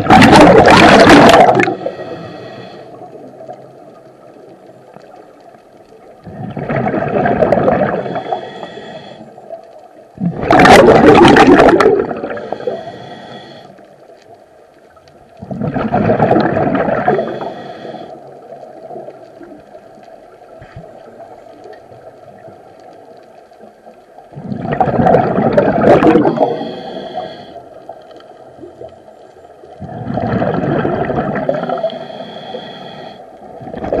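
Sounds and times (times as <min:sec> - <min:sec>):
exhaled bubbles gurgling underwater: 0:00.0 - 0:34.0
faint regulator hiss: 0:01.7 - 0:06.2, 0:07.9 - 0:10.2, 0:12.2 - 0:15.4, 0:17.0 - 0:24.3, 0:26.2 - 0:29.8, 0:31.5 - 0:33.6.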